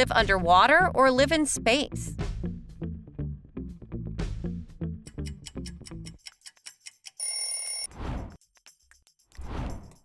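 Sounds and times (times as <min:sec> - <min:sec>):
bright ringing alert tone: 0:07.2 - 0:07.9
whoosh: 0:07.9 - 0:08.4, 0:09.4 - 0:10.0.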